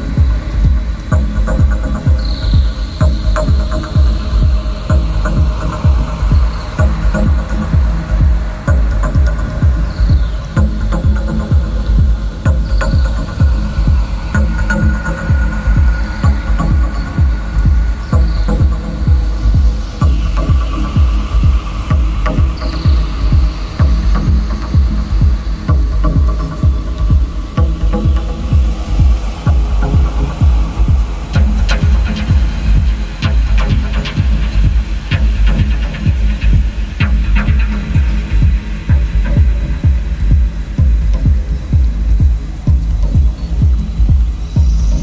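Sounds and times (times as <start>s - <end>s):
techno music: 0.0s - 45.0s.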